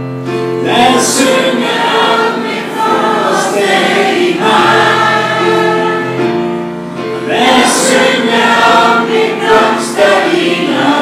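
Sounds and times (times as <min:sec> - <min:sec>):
choir singing slow song: 0:00.6 - 0:11.0.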